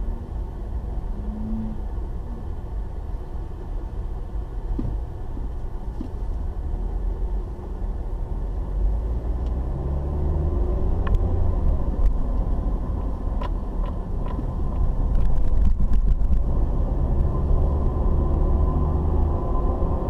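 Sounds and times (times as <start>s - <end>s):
car engine and road rumble: 0.0s - 20.0s.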